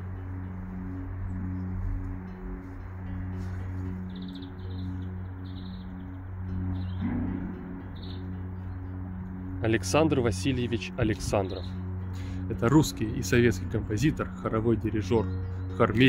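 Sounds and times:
ambient music with chimes: 0:00.0 - 0:16.0
small birds chirping: 0:00.0 - 0:16.0.

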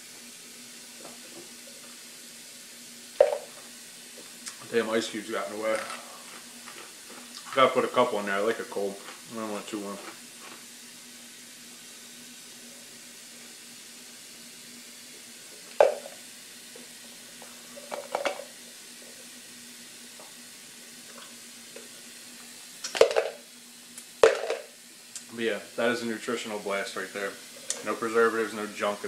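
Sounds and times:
ice knocking in plastic tub: 0:24.2 - 0:24.7.

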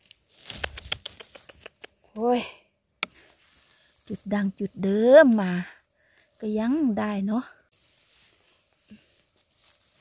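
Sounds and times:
twigs and litter crackling: 0:00.0 - 0:01.6, 0:03.2 - 0:10.0.

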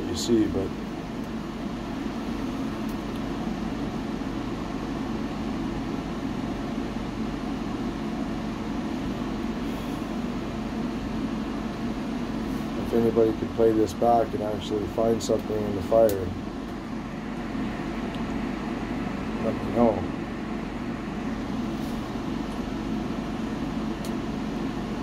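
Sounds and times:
wood stove fire humming: 0:00.0 - 0:25.0.

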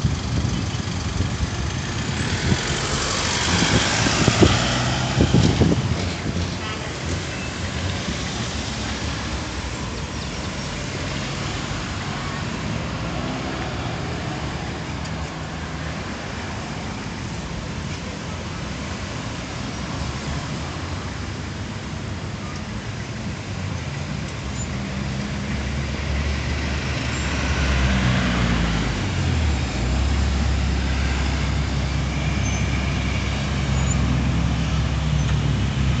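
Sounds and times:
engine hum and tyre noise: 0:00.0 - 0:36.0
cars driving past: 0:01.0 - 0:18.4, 0:24.4 - 0:36.0.

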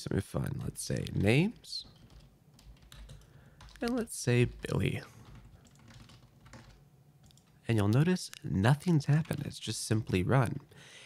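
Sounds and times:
light keyboard keystrokes: 0:00.6 - 0:08.5.

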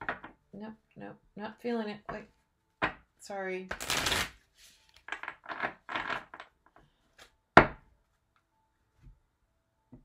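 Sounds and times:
shuffling cards: 0:03.8 - 0:05.2.

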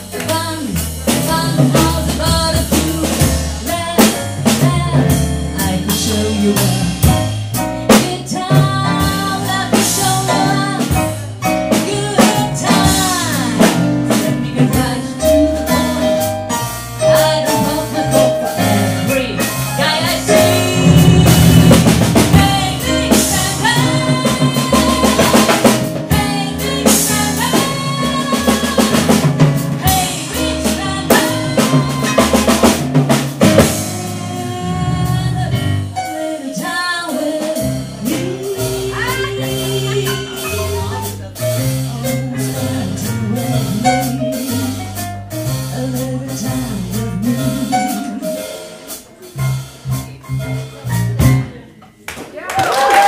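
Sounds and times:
woman singing with vibrato: 0:00.0 - 0:07.1, 0:07.9 - 0:16.2, 0:17.0 - 0:41.3, 0:45.7 - 0:48.5
low bass notes: 0:00.0 - 0:36.0, 0:37.6 - 0:51.8
electric keyboard chords: 0:00.0 - 0:51.8
drum kit beat: 0:00.0 - 0:52.1
jazz band accented hits: 0:00.0 - 0:52.1.

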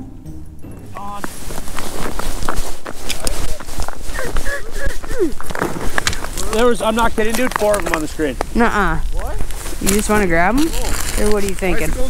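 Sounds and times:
voices: 0:00.7 - 0:01.7, 0:02.5 - 0:12.0
boots crunching on ice: 0:00.7 - 0:12.0.

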